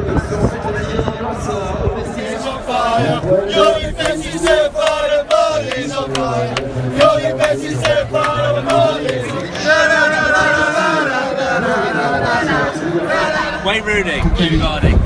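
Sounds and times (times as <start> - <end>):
male football fans chanting: 0.4 - 14.5.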